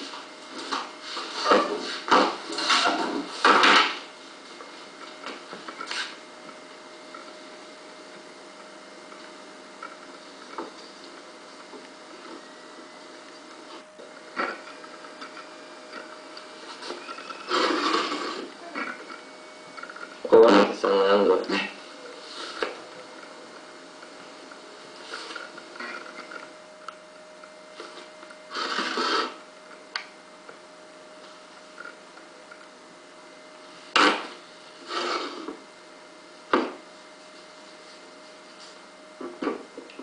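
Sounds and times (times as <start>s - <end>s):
modelling tool scraping clay: 15.9s - 19.2s, 27.8s - 29.4s, 33.9s - 35.6s.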